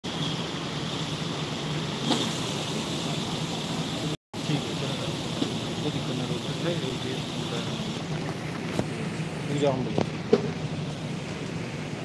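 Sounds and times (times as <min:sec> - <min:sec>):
hiss: 0:00.1 - 0:08.0.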